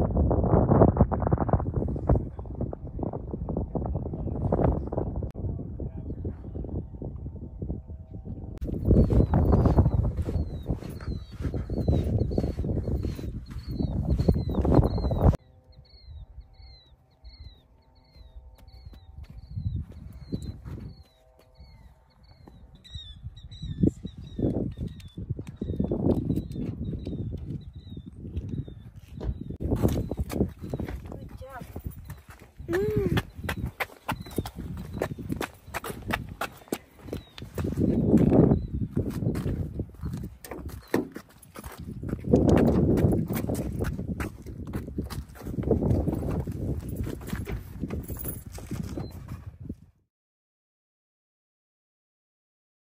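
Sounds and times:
wind rumbling on microphone: 0.0s - 50.0s
small bird chirping: 8.7s - 35.8s.

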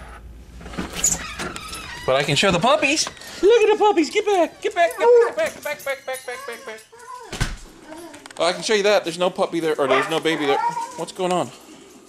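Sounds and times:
door opening clicks and rustling: 0.6s - 3.6s, 7.2s - 8.5s
puppies yipping and whining: 9.8s - 11.1s.

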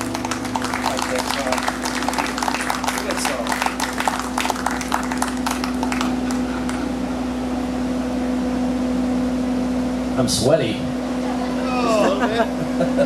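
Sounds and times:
audience clapping: 0.0s - 7.0s
sound system low hum: 0.0s - 13.0s.

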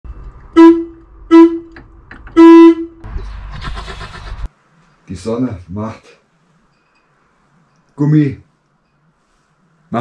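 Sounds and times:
vehicle horn toots: 0.5s - 1.8s, 2.4s - 3.0s.

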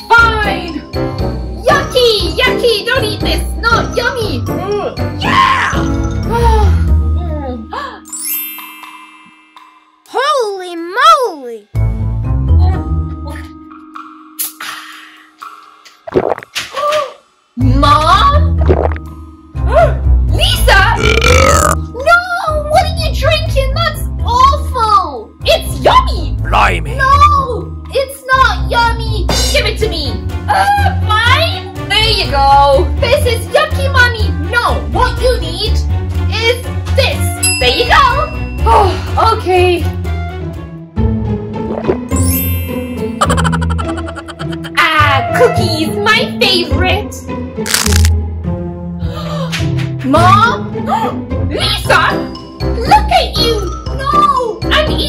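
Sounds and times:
background music: 0.0s - 16.6s, 17.3s - 55.0s
gulping: 21.0s - 21.8s, 43.2s - 44.8s
woman burping: 21.0s - 21.8s, 43.2s - 44.8s
cookie crunch bite: 47.7s - 48.1s.

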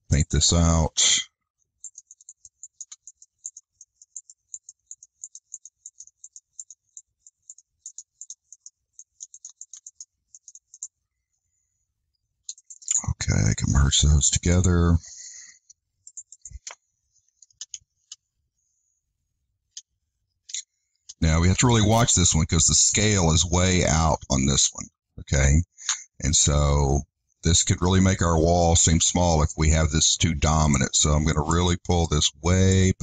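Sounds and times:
computer mouse clicks: 1.8s - 11.0s, 12.4s - 13.1s, 15.6s - 18.3s, 19.7s - 21.8s.

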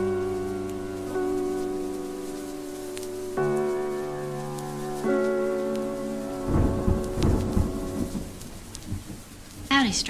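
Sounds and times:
lofi music chord: 0.0s - 9.1s
steady rain: 0.0s - 10.0s
thunder rumble: 0.0s - 10.0s.

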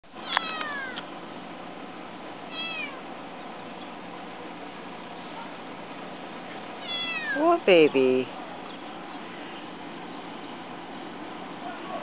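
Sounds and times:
kitten meowing: 0.2s - 1.0s, 2.5s - 3.0s, 6.8s - 7.4s.

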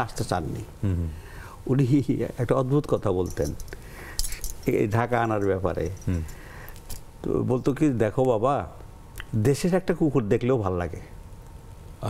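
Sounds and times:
man talking: 4.6s - 6.3s, 7.2s - 11.1s.

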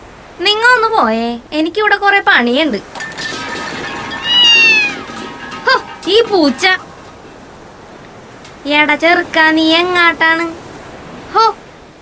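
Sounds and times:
high meow-like cry: 4.2s - 5.0s.

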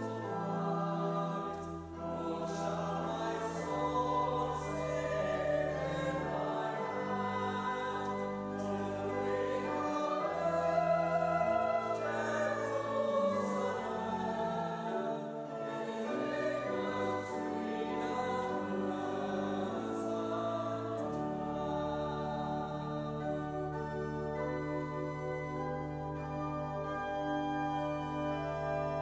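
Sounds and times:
congregation singing a hymn: 0.0s - 29.0s
pipe organ: 0.0s - 29.0s.

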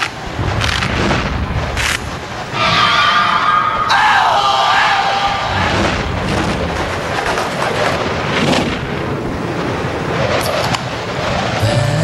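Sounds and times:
rushing wind: 0.0s - 12.0s
music: 11.6s - 12.0s.

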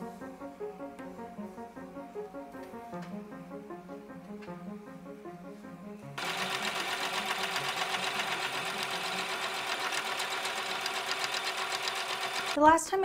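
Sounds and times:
sewing machine stitching: 6.2s - 12.6s.

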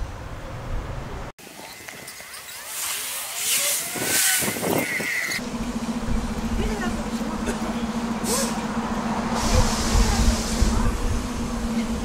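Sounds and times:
bus engine idling: 5.3s - 12.0s.

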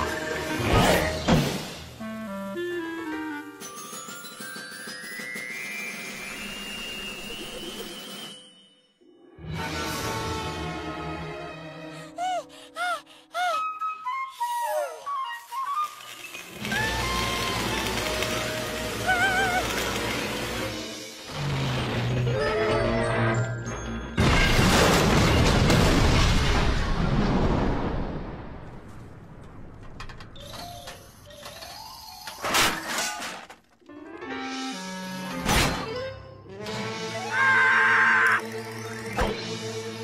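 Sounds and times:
cartoon music: 12.0s - 16.1s, 18.8s - 20.0s, 22.3s - 23.7s
metal wreckage crashing: 24.2s - 30.2s.

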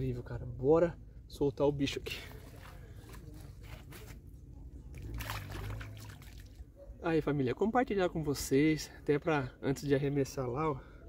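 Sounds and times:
water sloshing and splashing: 2.0s - 6.8s.

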